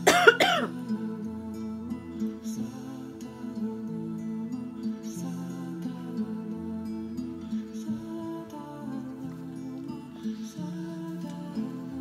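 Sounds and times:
woman coughing: 0:00.0 - 0:00.8
soft new-age music: 0:00.0 - 0:12.0.

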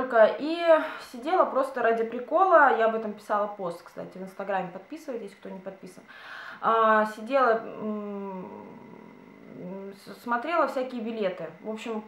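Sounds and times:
woman's voice: 0:00.0 - 0:12.0
woman humming mmm: 0:07.6 - 0:10.2.

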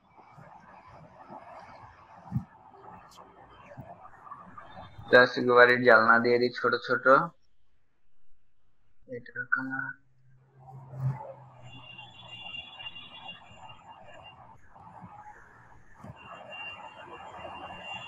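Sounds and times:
low steady hum: 0:02.3 - 0:12.0.

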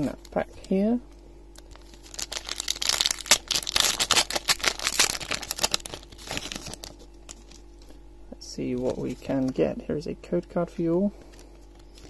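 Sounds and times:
foil wrapper tearing and crinkling: 0:01.5 - 0:08.0.

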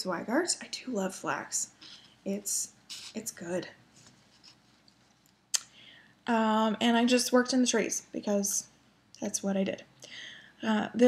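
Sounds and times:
fabric rustling: 0:02.9 - 0:05.4.

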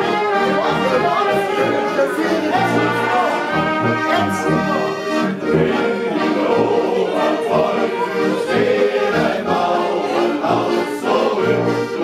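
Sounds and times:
accordion melody: 0:00.0 - 0:12.0
brass instruments: 0:00.0 - 0:12.0
low bass notes: 0:02.4 - 0:05.9.

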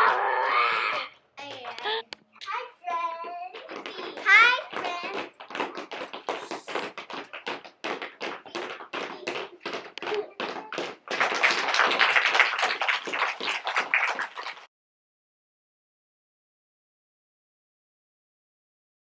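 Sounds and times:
children tapping by hand: 0:03.2 - 0:14.6.

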